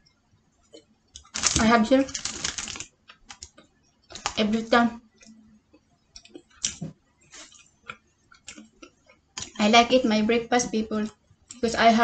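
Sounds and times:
person chewing food: 5.2s - 9.6s.

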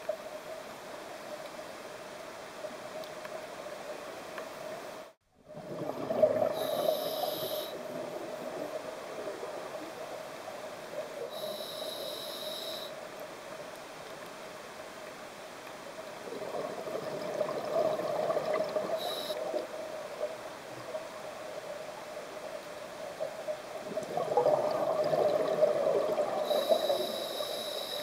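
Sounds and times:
muffled underwater hiss: 0.0s - 28.0s
diver breathing through regulator: 6.5s - 7.8s, 11.3s - 12.9s, 26.4s - 28.0s.

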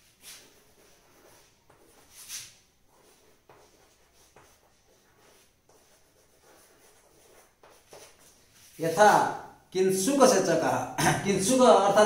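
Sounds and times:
chalk scratching on chalkboard: 0.1s - 9.2s.

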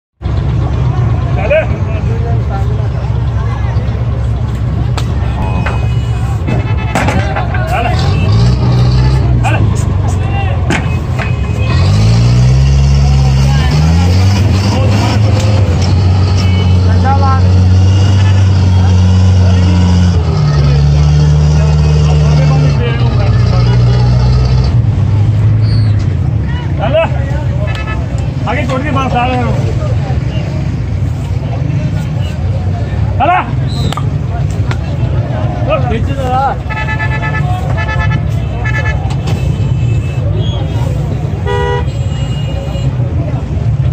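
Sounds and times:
vehicle engine running: 0.2s - 33.2s
men's voices calling out: 31.6s - 41.8s.

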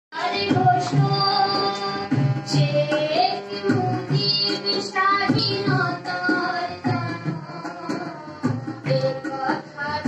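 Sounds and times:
drum beats: 0.2s - 10.0s.

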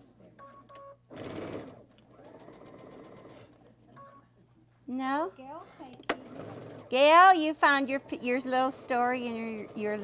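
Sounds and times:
sewing machine stitching: 1.1s - 3.5s, 6.1s - 10.0s.

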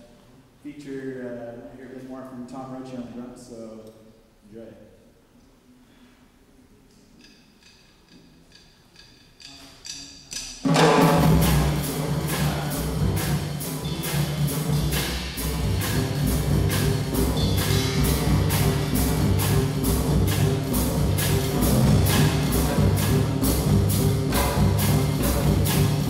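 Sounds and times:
jazz band playing: 10.7s - 26.0s.

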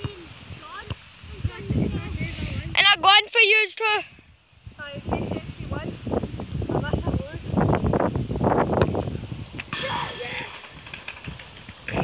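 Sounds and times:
short hiss: 9.5s - 11.2s
children's voices: 9.7s - 10.8s.

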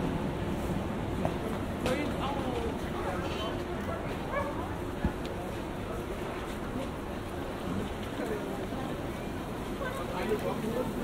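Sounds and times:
crowd chatter: 1.2s - 11.0s
small dog yipping: 4.3s - 4.6s.

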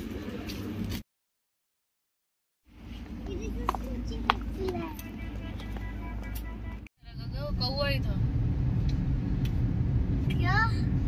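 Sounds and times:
open-air background noise: 0.0s - 1.0s
road and engine rumble in car: 2.7s - 11.0s.

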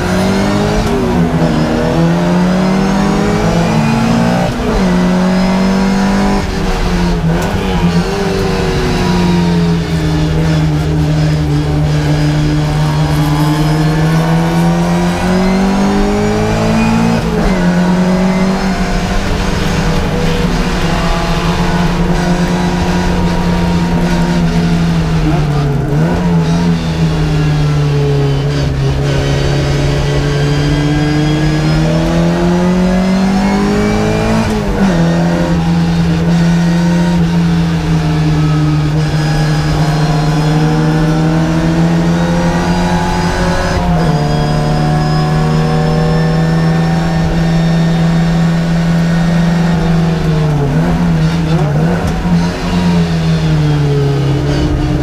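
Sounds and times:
race car engine at speed: 0.0s - 55.0s.

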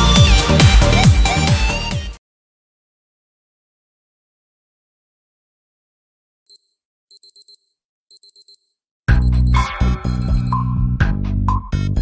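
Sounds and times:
alarm clock beeping: 6.5s - 10.8s.

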